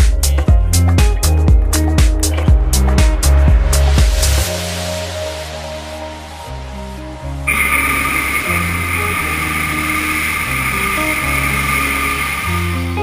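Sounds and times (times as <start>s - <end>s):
background song: 3.7s - 13.0s.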